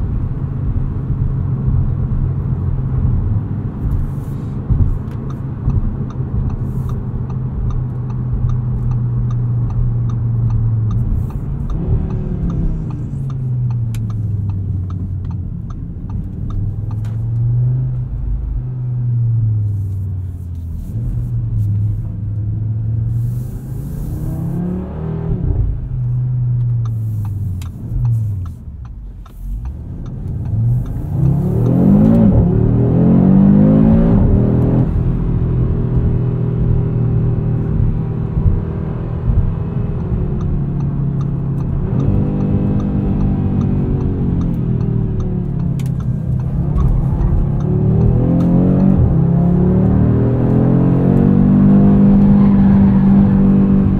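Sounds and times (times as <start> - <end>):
car engine accelerating and shifting: 0.0 - 53.9.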